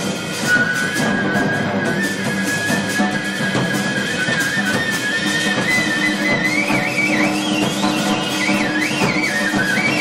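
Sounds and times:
busy drumming with cymbals: 0.0 - 10.0.

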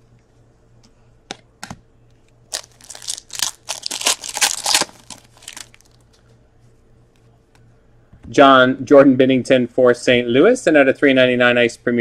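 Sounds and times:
wrapper tearing and crinkling: 2.5 - 6.0.

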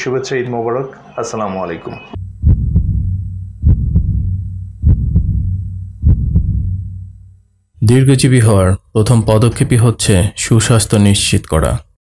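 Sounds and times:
low steady hum: 2.1 - 11.8
heartbeat thumps: 2.2 - 7.4.

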